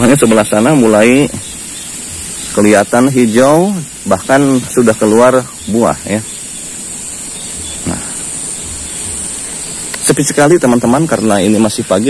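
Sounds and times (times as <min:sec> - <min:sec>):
high-pitched outdoor hiss: 0:00.0 - 0:12.0.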